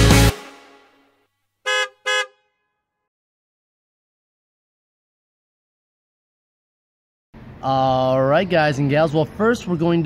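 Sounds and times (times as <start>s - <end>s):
vehicle horn toot: 1.7s - 2.8s.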